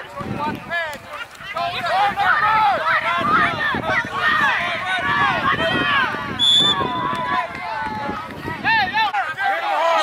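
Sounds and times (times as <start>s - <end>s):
voices shouting and calling out: 0.0s - 10.0s
loud high shout: 1.5s - 10.0s.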